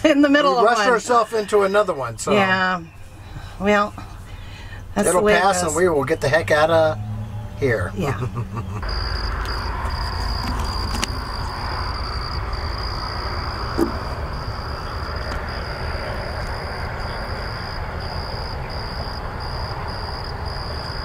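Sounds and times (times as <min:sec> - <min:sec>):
crickets chirping: 0:00.0 - 0:21.0.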